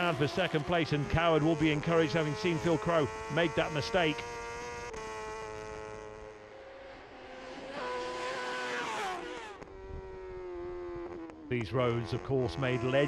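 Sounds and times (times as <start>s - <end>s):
racing motorcycle engine: 0.0s - 13.0s
wind noise: 9.8s - 10.2s.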